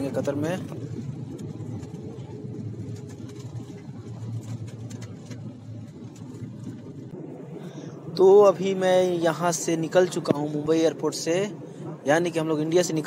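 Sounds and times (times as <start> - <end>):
jet engine hum in cabin: 0.0 - 13.0.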